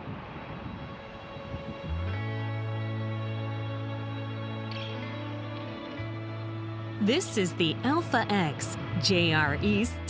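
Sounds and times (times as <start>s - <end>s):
music with deep bass: 0.0s - 10.0s.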